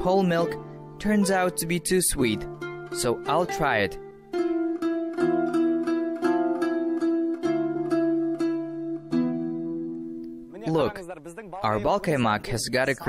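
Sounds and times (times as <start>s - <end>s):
plucked string melody: 0.0s - 12.9s.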